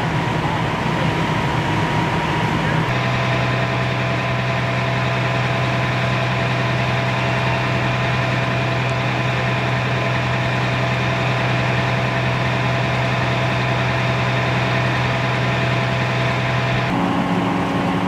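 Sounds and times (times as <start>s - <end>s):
diesel engine running: 0.0s - 18.0s.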